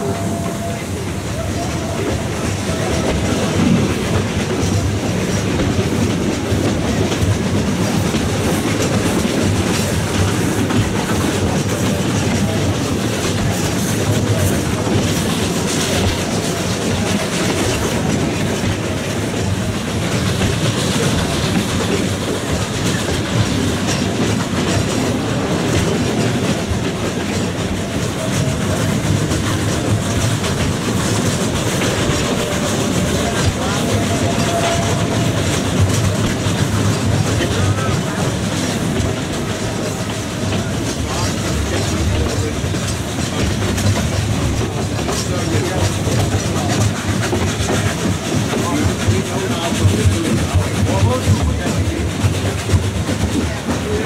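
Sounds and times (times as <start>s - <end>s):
train carriages rolling and rattling: 0.0s - 54.0s.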